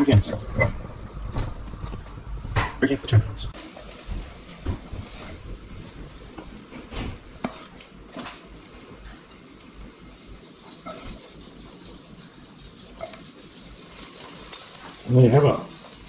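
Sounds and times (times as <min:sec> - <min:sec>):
faint frying in pan: 0:01.0 - 0:16.0.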